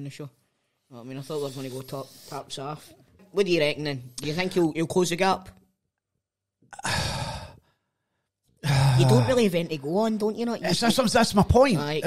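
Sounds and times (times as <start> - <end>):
man sighing: 6.7 - 7.8, 8.6 - 9.4.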